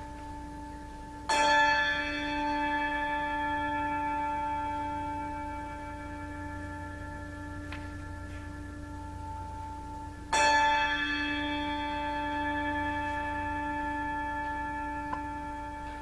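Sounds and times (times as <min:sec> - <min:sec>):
bell ringing: 0:00.0 - 0:16.0.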